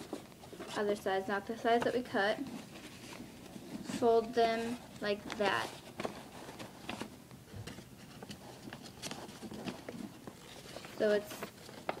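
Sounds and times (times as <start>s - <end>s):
paper being folded and creased: 2.4s - 7.1s, 7.7s - 12.0s.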